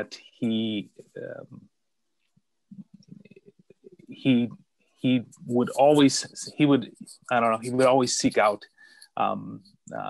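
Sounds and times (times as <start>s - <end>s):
man's voice breaking up: 5.1s - 8.6s.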